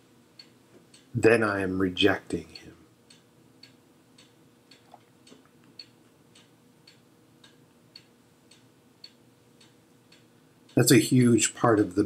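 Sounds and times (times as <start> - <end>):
clock ticking: 0.3 - 12.0.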